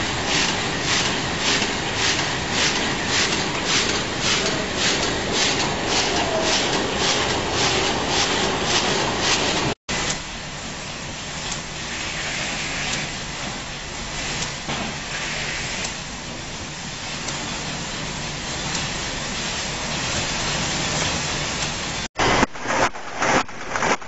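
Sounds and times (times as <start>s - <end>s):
hissing packing machinery: 0.0s - 24.0s.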